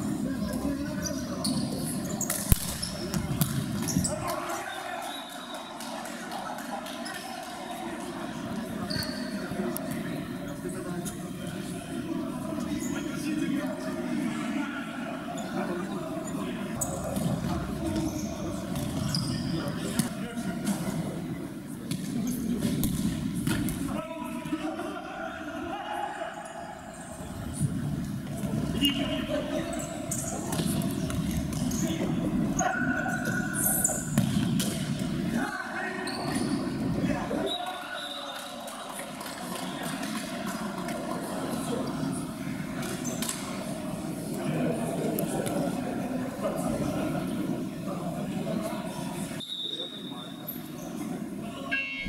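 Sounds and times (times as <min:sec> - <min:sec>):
players' voices: 0:00.0 - 0:52.0.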